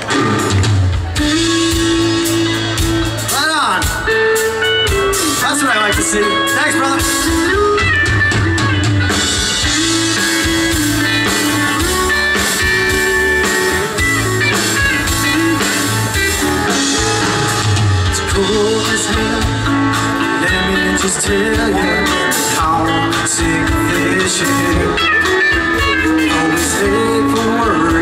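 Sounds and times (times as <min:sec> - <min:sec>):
bass guitar: 0:00.0 - 0:28.0
drum kit beat: 0:00.0 - 0:28.0
electric guitars: 0:00.0 - 0:28.0
keyboard: 0:00.0 - 0:28.0.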